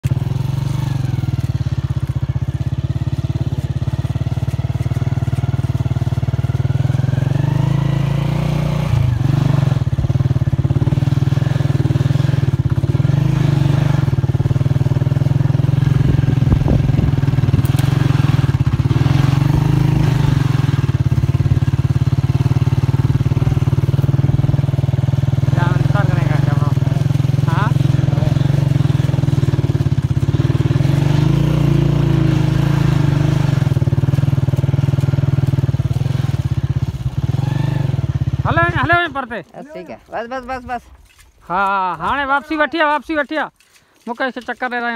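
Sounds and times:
motorcycle engine running: 0.0s - 44.9s.

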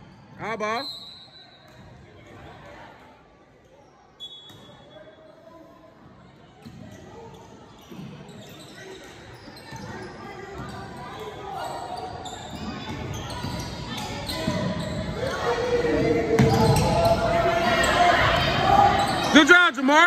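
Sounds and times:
sneakers squeaking on court: 6.6s - 15.6s, 16.3s - 19.5s.

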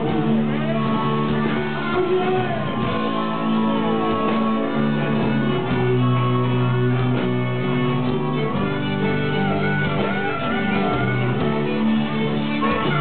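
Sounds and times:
rock band playing live: 0.0s - 13.0s.

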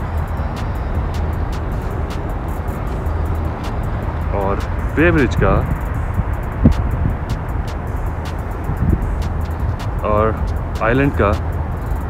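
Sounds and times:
light music with faint ticks: 0.0s - 12.0s
low city rumble: 0.0s - 12.0s.

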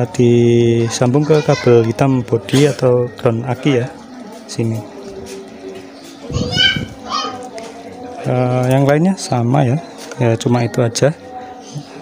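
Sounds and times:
child calling out: 6.3s - 7.4s.

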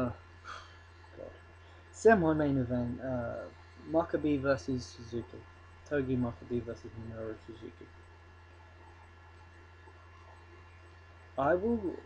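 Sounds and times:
faint low electrical hum: 0.0s - 12.0s.

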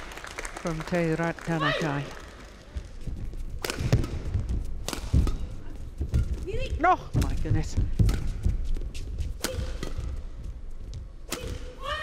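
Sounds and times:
racket hitting shuttlecock: 3.6s - 6.5s, 8.0s - 8.6s, 9.2s - 10.3s, 11.2s - 12.0s.

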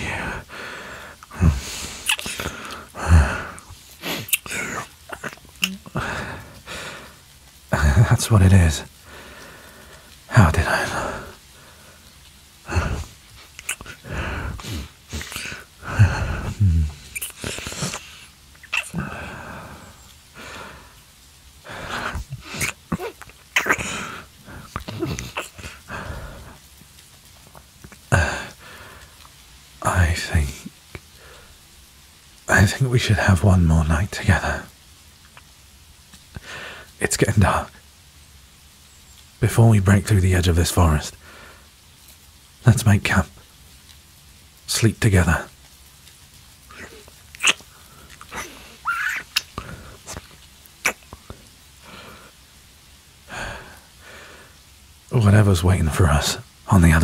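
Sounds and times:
soft breath: 0.0s - 4.4s
man breathing: 0.0s - 4.6s, 5.9s - 7.3s, 9.0s - 22.7s, 25.6s - 26.7s, 28.1s - 29.3s, 36.3s - 36.9s, 41.2s - 41.7s, 53.3s - 54.6s
faint mouth clicks: 2.0s - 2.9s, 5.2s - 5.9s, 13.4s - 14.0s, 35.2s - 35.5s, 46.7s - 51.5s
lip smacks: 2.0s - 6.0s, 13.2s - 15.7s, 16.4s - 19.1s, 35.2s - 35.5s, 46.0s - 51.5s
man laughing breathily: 5.9s - 7.0s, 12.7s - 18.2s
man humming: 12.7s - 18.0s.

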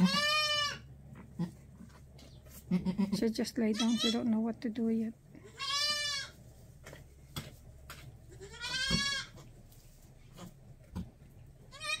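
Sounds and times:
goat kid bleating: 0.0s - 1.8s, 2.5s - 4.4s, 5.4s - 6.4s, 8.2s - 9.6s, 11.6s - 12.0s.

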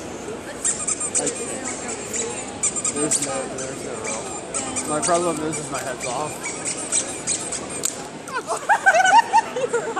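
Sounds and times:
background chatter: 0.0s - 9.9s
rubber squeaker toy squeaks: 0.6s - 8.1s.

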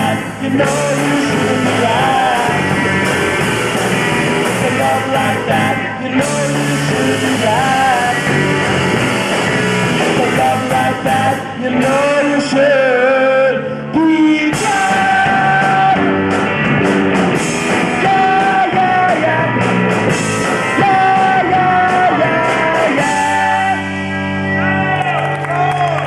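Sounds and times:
person singing long notes: 0.0s - 3.1s, 4.3s - 8.8s, 10.0s - 16.2s, 17.8s - 19.7s, 20.6s - 24.1s
drums with cymbals: 0.0s - 12.1s, 14.5s - 23.9s
bass guitar: 0.0s - 26.0s
electric guitars: 0.0s - 26.0s.

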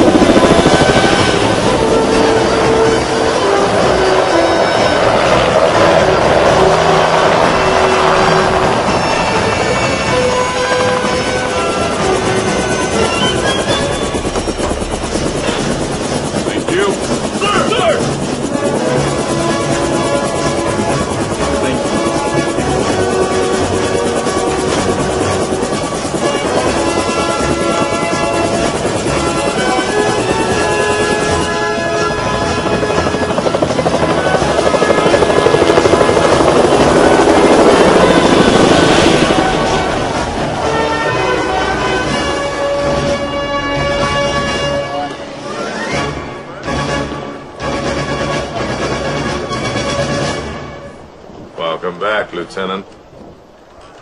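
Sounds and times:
helicopter rotor and engine: 0.0s - 52.5s
film score music: 0.0s - 53.4s.

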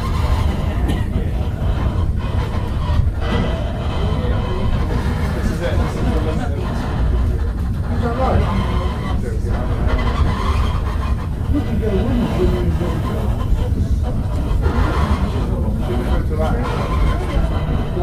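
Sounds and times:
passengers talking: 0.0s - 18.0s
steam locomotive low rumble: 0.0s - 18.0s.

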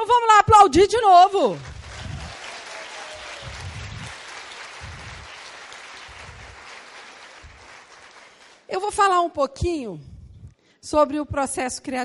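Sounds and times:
audience applauding: 1.6s - 8.7s.

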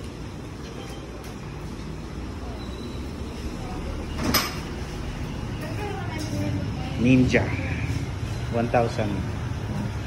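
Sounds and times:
low workshop rumble: 0.0s - 10.0s.

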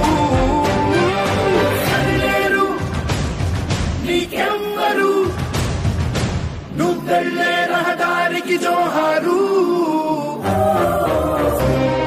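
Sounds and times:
patriotic song with long sung notes: 0.0s - 3.1s, 6.7s - 12.0s.

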